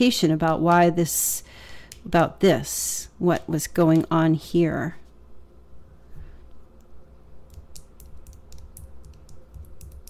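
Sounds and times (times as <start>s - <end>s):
quick sharp clicks and taps: 7.5s - 10.0s.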